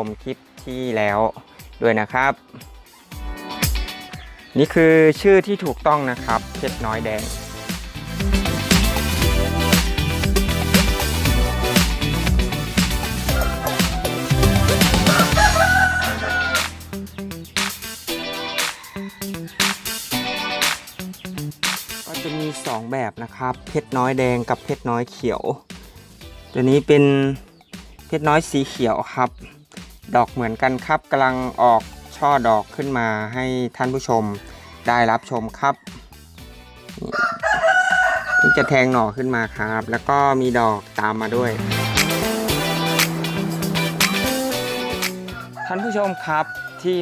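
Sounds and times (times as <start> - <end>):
background music with steady beat: 0.0 - 47.0
rooster crowing: 13.2 - 16.8, 18.6 - 19.9, 37.1 - 38.8, 41.8 - 47.0.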